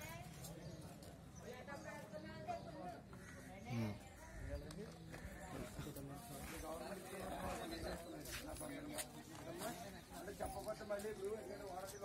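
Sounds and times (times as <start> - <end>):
people talking: 3.6 - 12.0.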